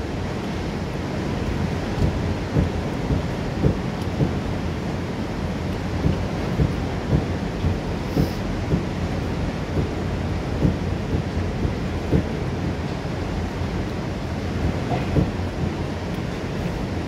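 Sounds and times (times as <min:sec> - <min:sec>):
waterfall roaring: 0:00.0 - 0:17.0.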